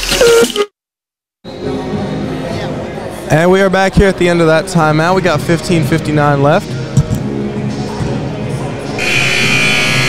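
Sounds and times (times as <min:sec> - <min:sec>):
scoreboard horn blast: 0:09.0 - 0:10.0.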